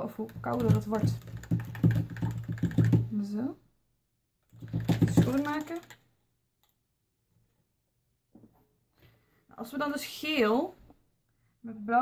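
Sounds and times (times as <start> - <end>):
objects knocking on tabletop: 4.6 - 5.6.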